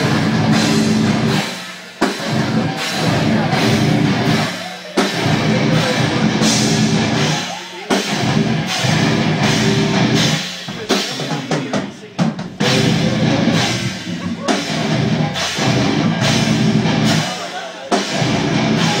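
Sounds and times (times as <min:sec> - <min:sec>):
metal band playing live: 0:00.0 - 0:19.0.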